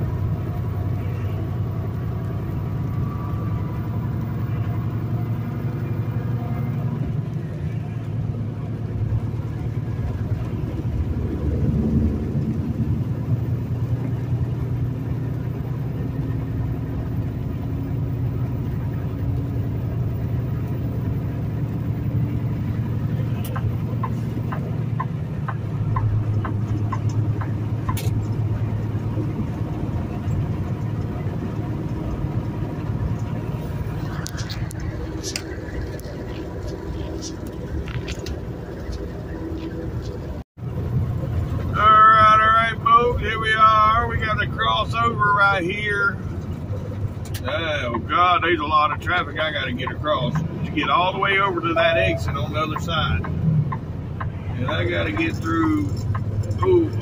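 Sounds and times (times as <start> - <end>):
truck engine and road rumble: 0.0 - 57.0.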